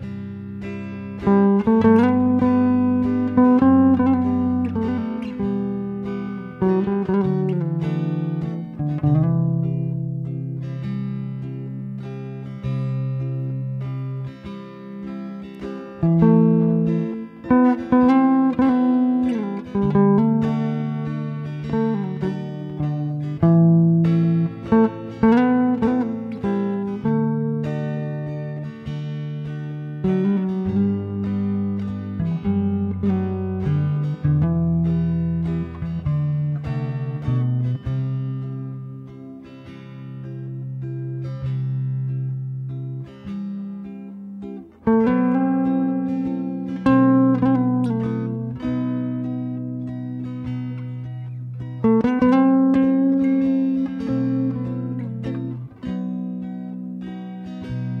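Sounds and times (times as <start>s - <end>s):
acoustic guitar playing: 0.0s - 58.0s.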